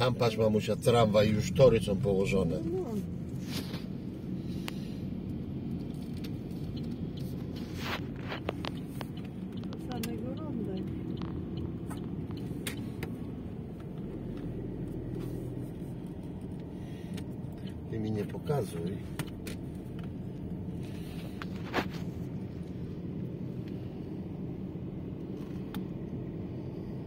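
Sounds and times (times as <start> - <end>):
car interior road rumble: 0.0 - 27.0.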